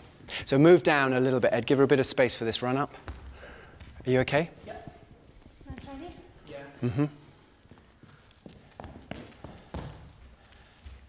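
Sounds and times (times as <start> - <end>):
footsteps on studio floor: 2.9 - 6.6, 7.4 - 11.0.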